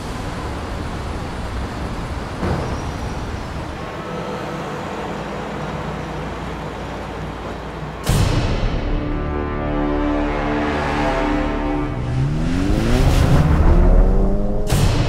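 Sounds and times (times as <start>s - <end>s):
city traffic rumble: 0.0s - 15.0s.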